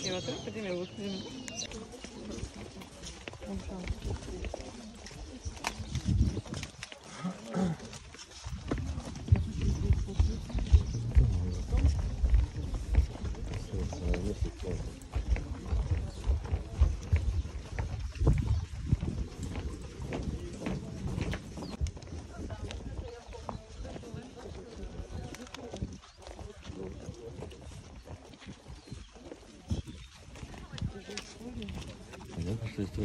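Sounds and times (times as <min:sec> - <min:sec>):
footsteps: 0:00.0 - 0:33.0
wind buffeting microphone: 0:03.2 - 0:06.9, 0:08.3 - 0:33.0.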